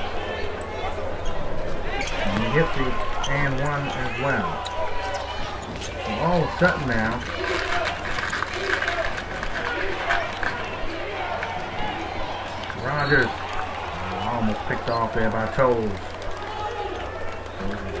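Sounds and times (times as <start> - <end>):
crowd din: 0.0 - 18.0
players and crowd calling out: 0.0 - 18.0.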